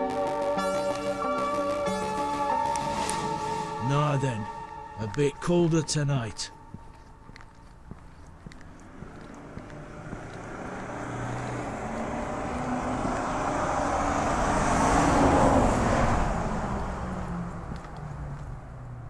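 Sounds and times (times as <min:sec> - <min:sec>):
car passing on road: 0:00.0 - 0:19.0.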